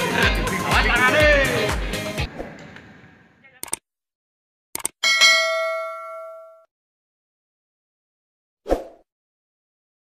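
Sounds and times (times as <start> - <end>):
double mouse click: 4.8 - 5.0
notification bell ding: 5.0 - 6.7.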